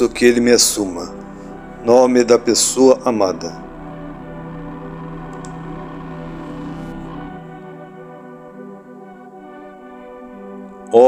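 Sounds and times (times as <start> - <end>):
ambient drone music: 0.0 - 11.0.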